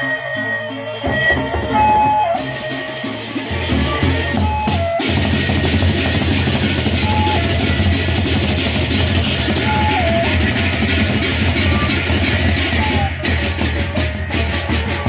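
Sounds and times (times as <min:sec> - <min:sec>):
held melodic notes: 0:00.0 - 0:15.0
large barrel drums: 0:01.0 - 0:15.0.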